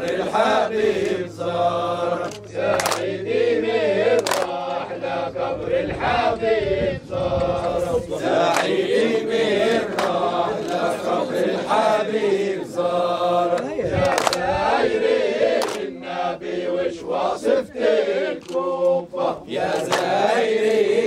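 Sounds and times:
men chanting together: 0.0 - 21.0
hand claps: 1.0 - 1.2, 2.2 - 3.2, 4.2 - 4.6, 8.3 - 8.8, 9.7 - 10.9, 13.5 - 14.5, 15.5 - 15.9, 19.7 - 20.8.

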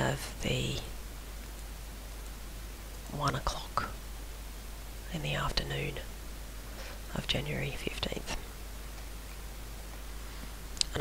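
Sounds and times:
person speaking quietly: 0.0 - 0.9, 5.1 - 6.1, 7.1 - 8.4
steady low hum: 0.0 - 11.0.

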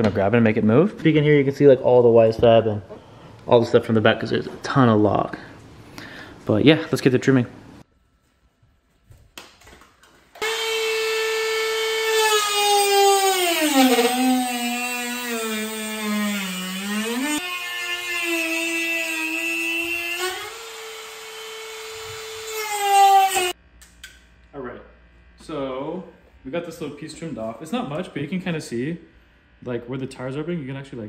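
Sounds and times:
rotary tool cutting fiberglass: 10.4 - 23.6.

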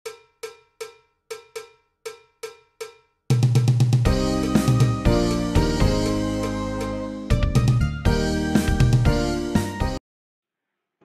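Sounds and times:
music with heavy bass beat: 3.3 - 10.0.

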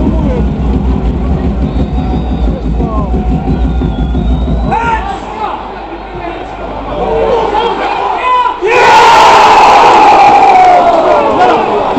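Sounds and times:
football crowd shouting: 1.4 - 11.9
crowd roar sliding down: 6.8 - 11.9.

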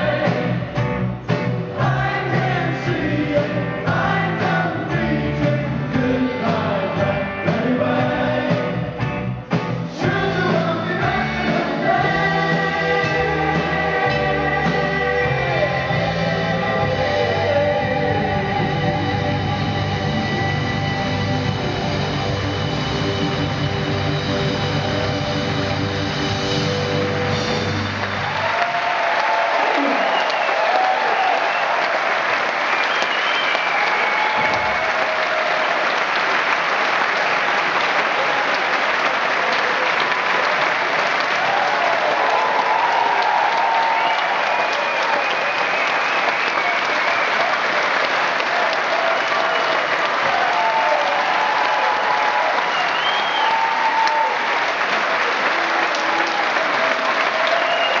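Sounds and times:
audience applauding: 9.6 - 58.0
voices cheering: 26.9 - 58.0.

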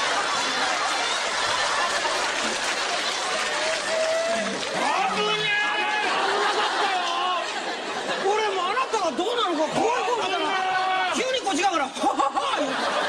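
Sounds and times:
people talking over one another: 0.0 - 13.0.

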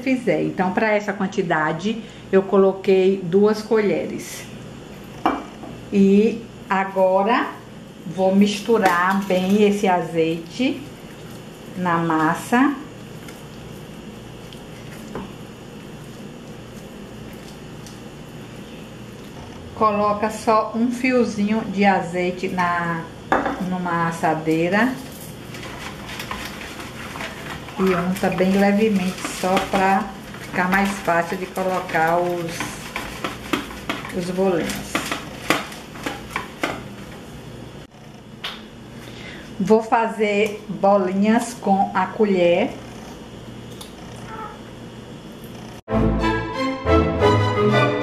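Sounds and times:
low kitchen background: 0.0 - 48.0
spatula stirring soft dough: 24.5 - 37.3.

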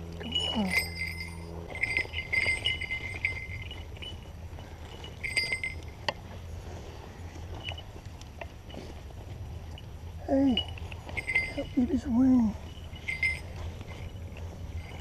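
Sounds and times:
rustling in dry grass: 0.0 - 15.0
small bells jingling: 0.0 - 15.0.

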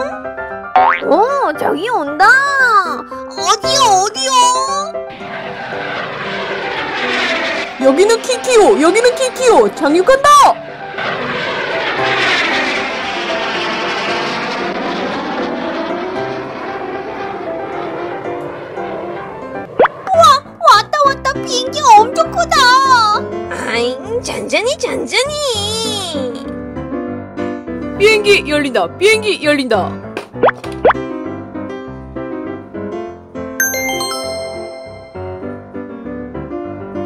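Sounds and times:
background music: 0.0 - 5.2, 33.6 - 37.0
children's background music: 0.8 - 4.9, 20.1 - 26.5, 33.6 - 35.5
jet airliner whoosh: 4.5 - 20.6
upward-sweeping bloop effects: 33.6 - 35.4.

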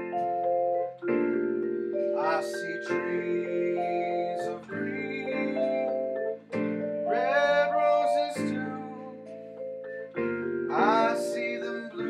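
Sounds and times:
vibraphone chords: 0.0 - 12.0.

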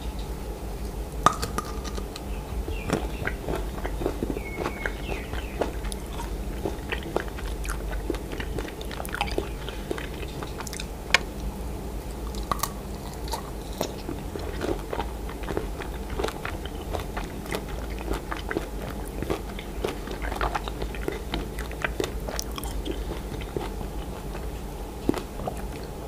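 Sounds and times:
crunchy chewing: 0.8 - 26.0
biting candy-coated fruit: 1.2 - 11.3, 12.2 - 26.0.

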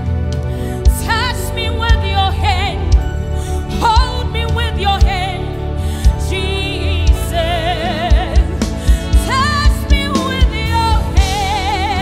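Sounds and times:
band accompaniment with low beat: 0.0 - 12.0.

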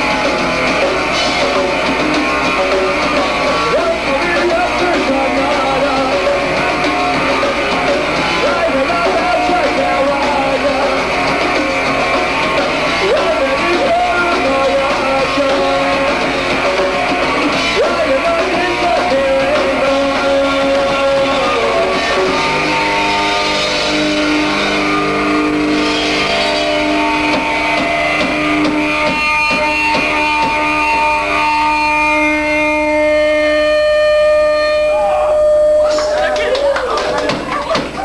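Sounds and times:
electric guitar held notes: 0.0 - 38.0
punk rock band playing: 0.0 - 38.0.

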